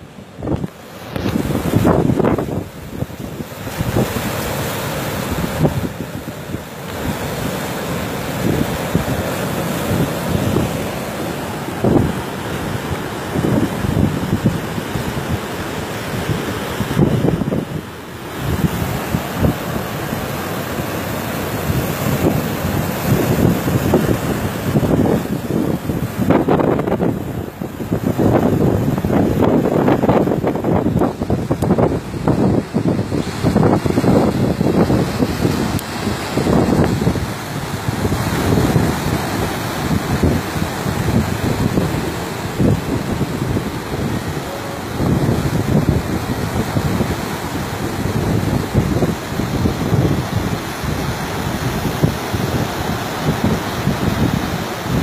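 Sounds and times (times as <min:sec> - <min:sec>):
sea surf breaking: 0:00.0 - 0:55.0
wind buffeting microphone: 0:00.0 - 0:55.0.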